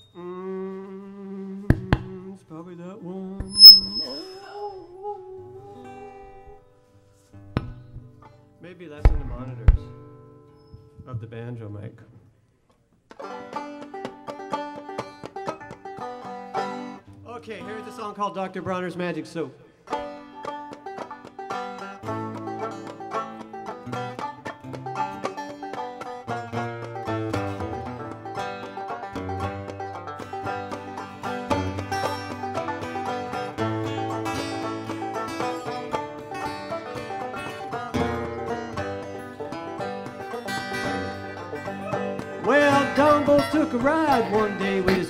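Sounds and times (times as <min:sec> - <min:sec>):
plucked banjo notes: 0:03.4 - 0:04.8, 0:13.1 - 0:18.0, 0:19.8 - 0:45.0
acoustic guitar chords: 0:26.4 - 0:45.0.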